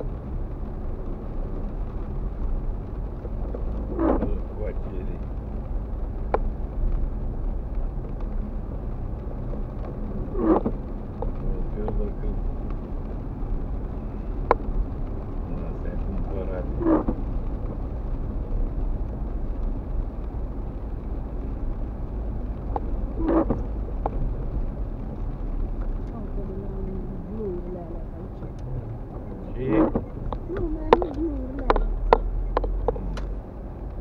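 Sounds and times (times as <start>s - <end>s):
car driving on wet street: 0.0s - 34.0s
windscreen wiper sweep: 0.0s - 34.0s.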